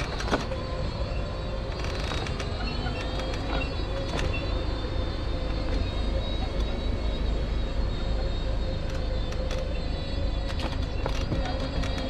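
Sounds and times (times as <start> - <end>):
electric motor whine: 0.0 - 12.0.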